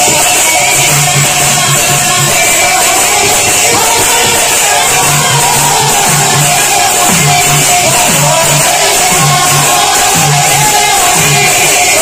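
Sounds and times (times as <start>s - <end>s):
barrel drum beaten: 0.0s - 12.0s.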